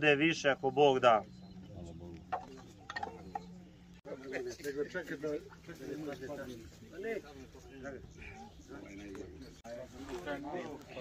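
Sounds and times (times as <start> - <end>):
people talking quietly: 0.0 - 11.0.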